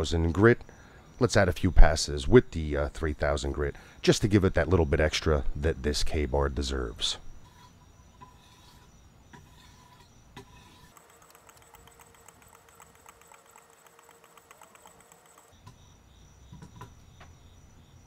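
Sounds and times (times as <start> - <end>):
sharpening stone scraping blade: 7.4 - 11.0.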